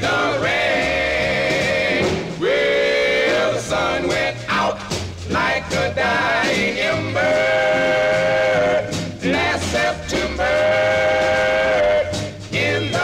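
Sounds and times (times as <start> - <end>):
bass line: 0.0 - 13.0.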